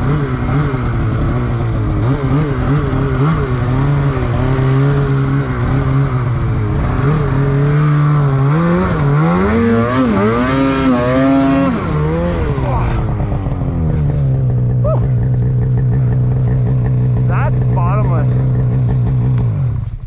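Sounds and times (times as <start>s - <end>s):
snowmobile engine revving and idling: 0.0s - 20.0s.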